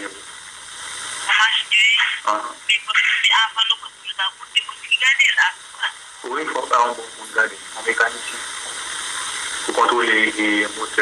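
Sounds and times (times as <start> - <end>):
person talking over phone line: 1.3 - 8.5, 9.7 - 11.0.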